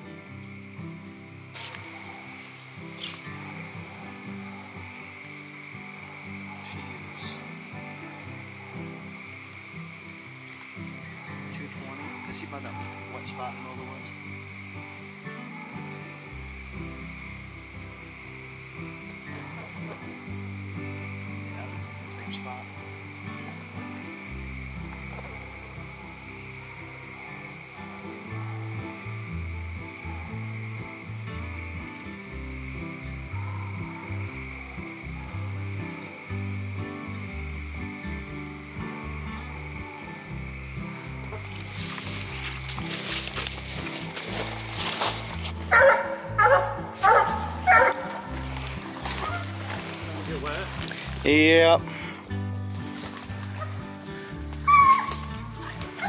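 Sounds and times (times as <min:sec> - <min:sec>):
background music: 0:00.0 - 0:56.0
night insects droning: 0:00.0 - 0:56.0
dog barking: 0:01.6 - 0:05.1, 0:05.9 - 0:07.5, 0:11.1 - 0:13.7, 0:15.4 - 0:16.1, 0:25.2 - 0:29.0, 0:33.2 - 0:35.6, 0:45.7 - 0:49.7.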